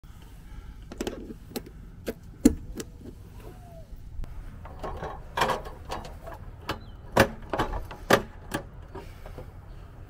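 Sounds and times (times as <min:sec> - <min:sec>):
metallic clicks and knocks: 0:04.6 - 0:09.4.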